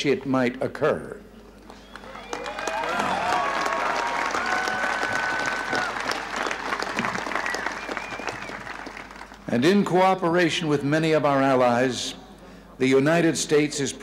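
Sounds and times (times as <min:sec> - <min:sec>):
crowd applauding and cheering: 0:01.6 - 0:09.5
calls or whistles: 0:07.3 - 0:08.7.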